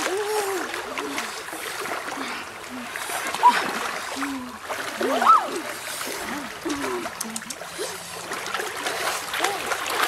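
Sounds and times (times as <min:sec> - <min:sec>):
water sloshing and splashing: 0:00.0 - 0:10.0.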